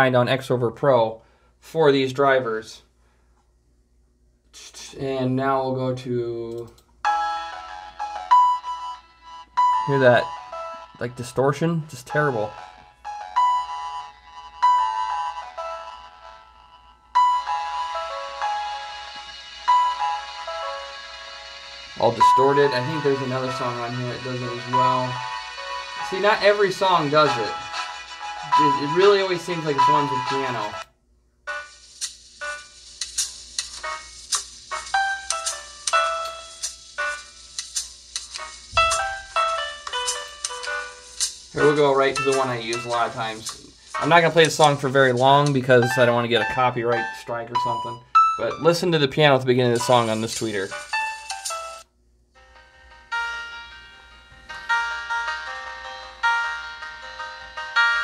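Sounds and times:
piano through a distorting speaker: 6.5 - 30.9, 31.5 - 58.0.

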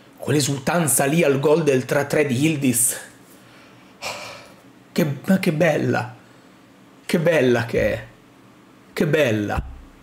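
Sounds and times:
man talking: 0.2 - 3.2, 4.9 - 6.2, 7.1 - 8.2, 9.0 - 9.8.

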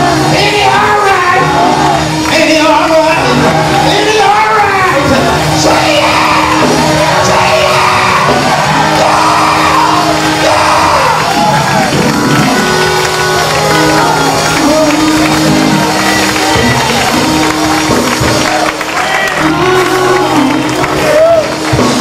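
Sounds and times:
congregation voices: 0.0 - 22.0
held keyboard chords: 0.0 - 22.0
preacher shouting into microphone: 0.1 - 12.1.

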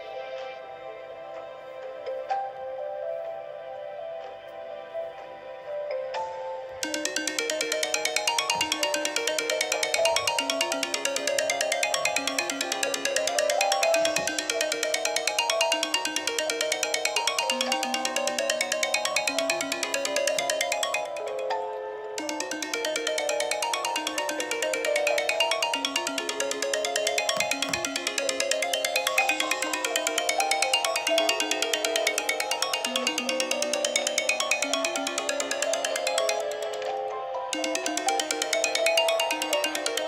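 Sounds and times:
phone musical ringtone: 6.8 - 40.0.

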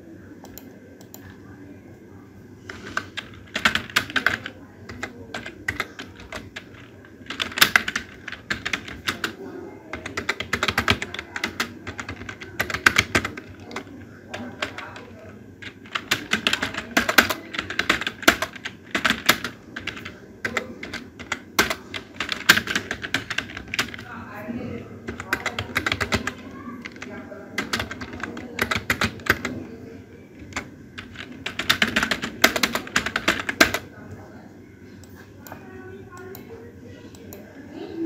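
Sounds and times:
computer keyboard typing: 0.4 - 1.4, 2.7 - 24.2, 24.8 - 33.9, 35.4 - 37.5.

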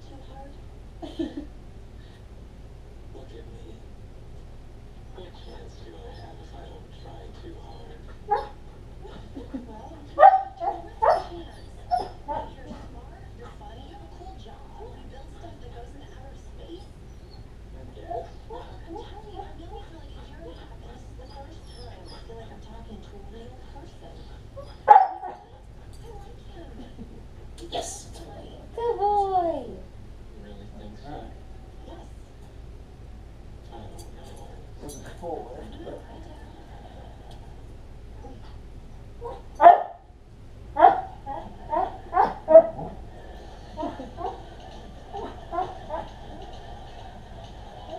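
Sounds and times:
faint tv dialogue: 0.0 - 47.9
dog barking and yipping: 10.2 - 11.3, 24.8 - 25.4, 39.2 - 40.0, 40.8 - 41.2, 41.8 - 42.9
dog yipping: 10.2 - 12.2.

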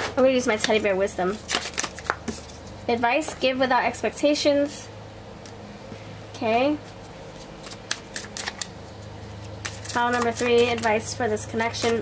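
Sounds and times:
cards being shuffled: 0.6 - 2.8, 6.9 - 12.0.

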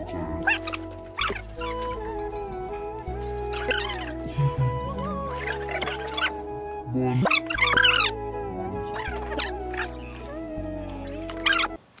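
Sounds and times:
background music with held notes: 0.0 - 11.9.

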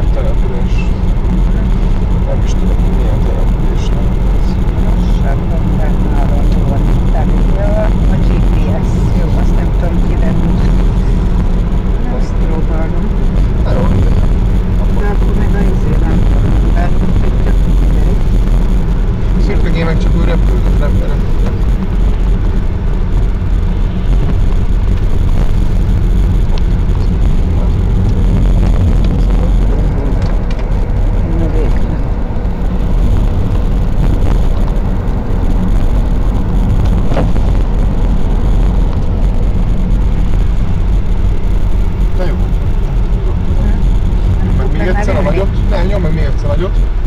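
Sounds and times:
car engine and tyre rumble: 0.0 - 47.0.

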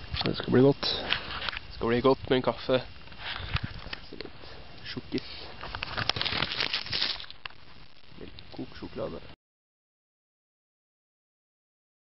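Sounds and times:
plastic wrapper crinkling: 5.6 - 8.6.

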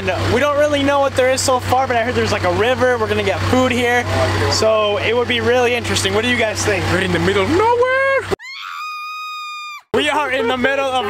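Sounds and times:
high-pitched scream: 7.6 - 11.0.

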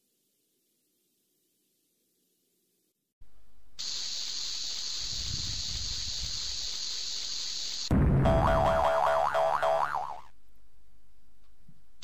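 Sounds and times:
fuse hissing: 3.8 - 7.9
loud bang: 7.9 - 8.8.

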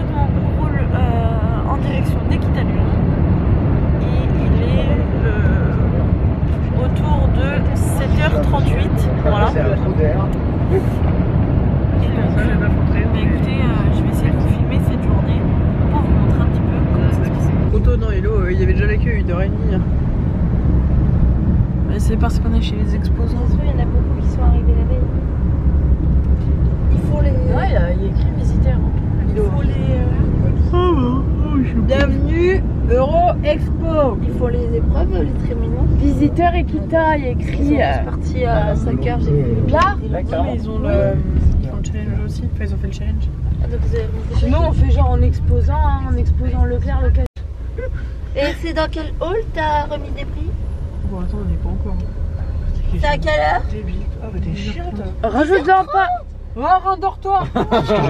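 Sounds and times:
passengers chattering: 0.0 - 20.6, 21.4 - 58.0
engine and road rumble: 0.0 - 58.0.

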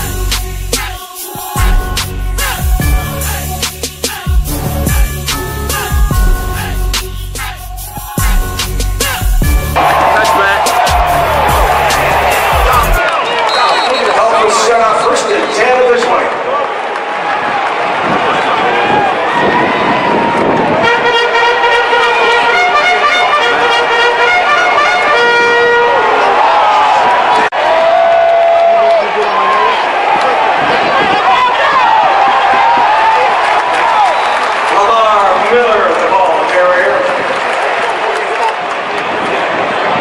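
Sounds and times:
brass music: 0.0 - 13.0, 20.8 - 26.8
stadium crowd noise: 9.7 - 40.0
fans talking: 9.8 - 16.8, 20.0 - 27.5.

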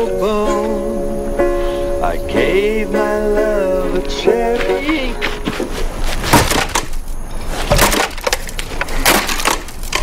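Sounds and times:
acoustic guitar being smashed: 4.4 - 10.0
wood cracking and splintering: 4.9 - 10.0.

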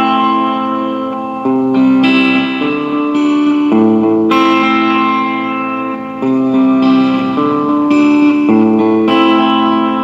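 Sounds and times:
electric guitar held notes: 0.0 - 10.0.

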